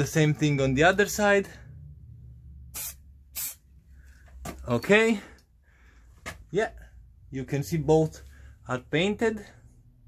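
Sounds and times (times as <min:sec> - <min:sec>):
spray paint can hissing: 0:02.7 - 0:03.6.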